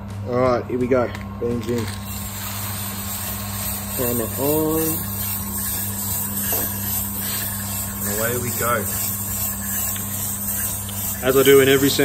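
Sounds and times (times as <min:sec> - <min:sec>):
roaster low hum: 0:00.0 - 0:12.0
coffee beans pouring into roaster: 0:01.4 - 0:12.0.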